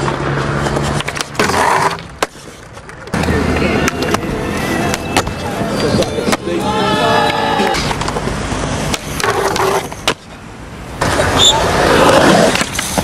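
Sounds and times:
skateboard clacks and knocks: 0.0 - 4.3
skateboard wheels rolling on concrete: 0.0 - 13.0.

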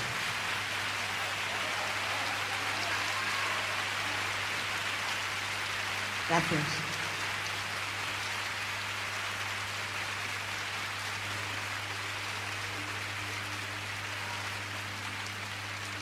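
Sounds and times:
audience applauding: 0.0 - 16.0.

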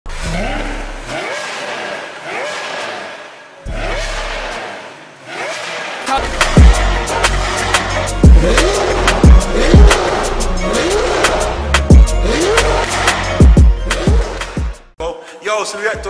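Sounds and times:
sports car engine revving: 0.1 - 2.6, 6.2 - 14.5.

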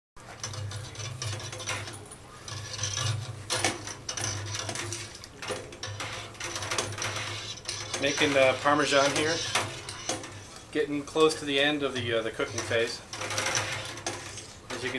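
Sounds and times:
utensil scraping a metal pot: 0.2 - 14.9.

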